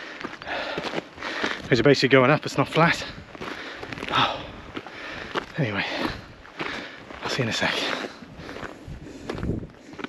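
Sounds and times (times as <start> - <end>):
man breathing hard: 0.0 - 1.7, 3.2 - 7.2, 7.8 - 10.0
footsteps on stony path: 0.0 - 10.0.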